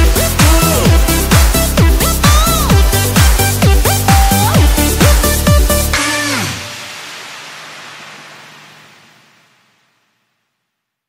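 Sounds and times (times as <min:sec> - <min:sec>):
electronic dance track ending: 0:00.0 - 0:10.2
noisy tail: 0:00.0 - 0:10.4.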